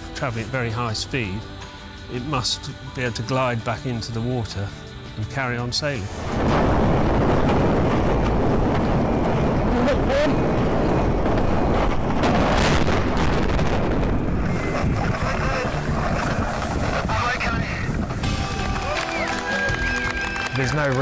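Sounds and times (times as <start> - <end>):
wind buffeting microphone: 6.2 - 18.9.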